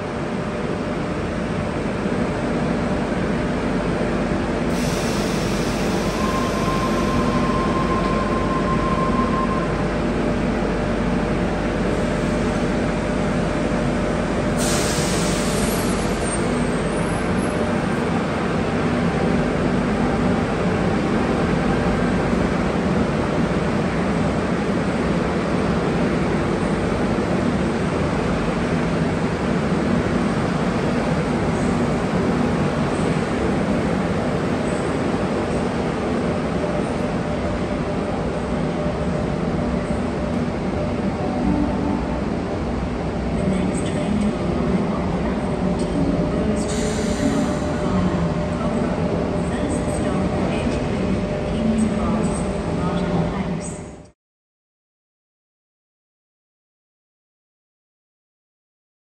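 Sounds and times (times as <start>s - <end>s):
electric train rumbling: 0.0s - 54.1s.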